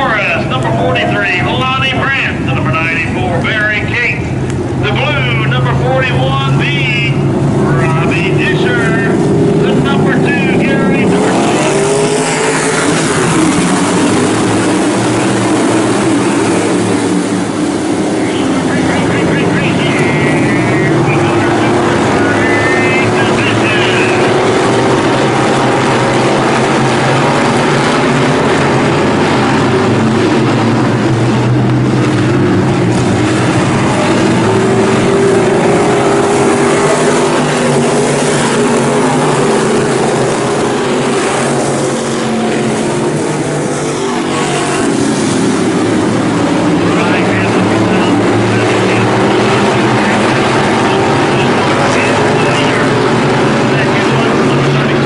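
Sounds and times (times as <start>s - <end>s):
racing car engines roaring: 0.0s - 55.0s.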